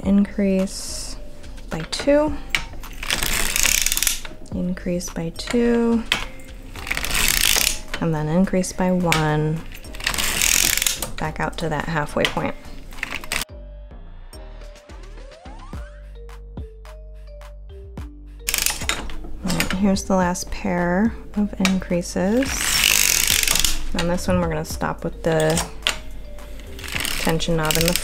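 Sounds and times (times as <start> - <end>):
soft background music: 0.0 - 28.0
hand-cranked sock machine clicking: 0.6 - 13.5, 18.5 - 28.0.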